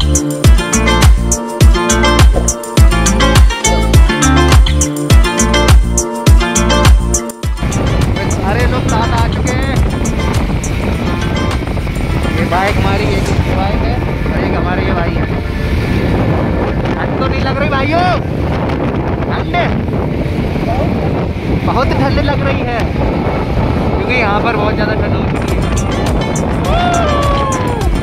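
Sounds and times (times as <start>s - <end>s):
music track: 0.0s - 18.2s, 24.2s - 28.0s
wind rushing on microphone: 6.8s - 28.0s
motorcycle engine and road noise: 7.6s - 28.0s.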